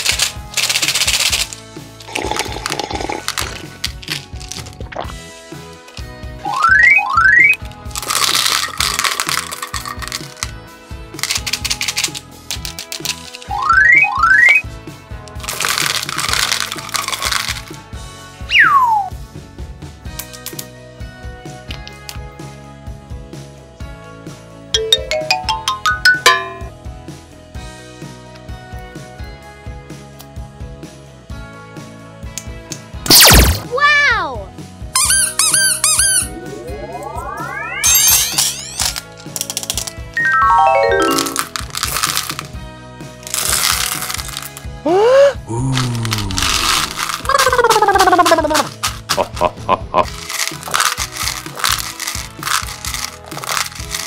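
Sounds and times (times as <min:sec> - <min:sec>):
candies clattering into plastic tub: 0:00.0 - 0:05.0, 0:07.7 - 0:10.6, 0:11.2 - 0:13.5, 0:15.3 - 0:17.8, 0:37.9 - 0:42.6, 0:43.2 - 0:44.7, 0:45.7 - 0:54.0
background music: 0:00.0 - 0:54.0
rubber toy squeaking: 0:35.0 - 0:36.3.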